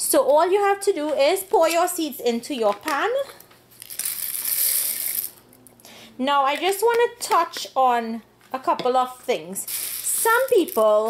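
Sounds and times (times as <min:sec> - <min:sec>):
cardamom pods rattling into a pan: 0:03.8 - 0:05.4, 0:09.7 - 0:11.0.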